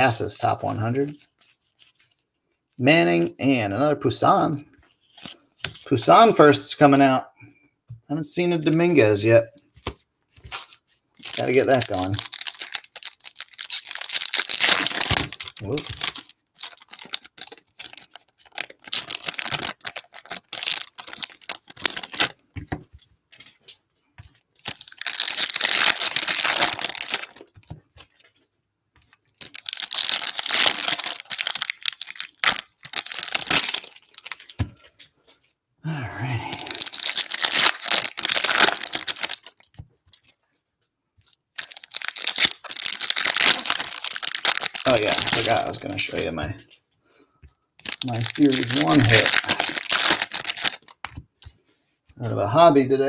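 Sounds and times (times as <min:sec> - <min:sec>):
cards rustling and clicking: 0:01.1 - 0:02.3, 0:04.8 - 0:05.9, 0:09.6 - 0:35.5, 0:36.5 - 0:40.4, 0:41.2 - 0:46.8, 0:47.8 - 0:51.7
foil wrappers crinkling and tearing: 0:10.4 - 0:22.5, 0:24.6 - 0:28.3, 0:29.1 - 0:35.1, 0:36.5 - 0:40.4, 0:41.2 - 0:46.4, 0:47.8 - 0:51.2.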